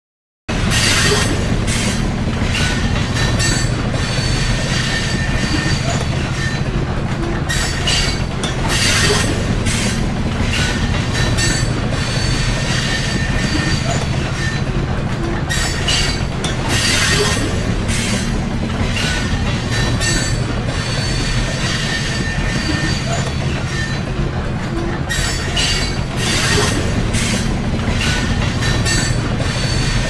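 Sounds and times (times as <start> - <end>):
passing train rumble: 0.5 - 30.0
train wheels squealing on rails: 0.5 - 30.0.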